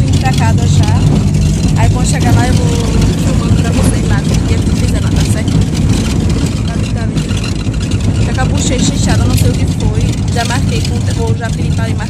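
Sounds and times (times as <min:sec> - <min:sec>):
car interior road rumble: 0:00.0 - 0:12.0.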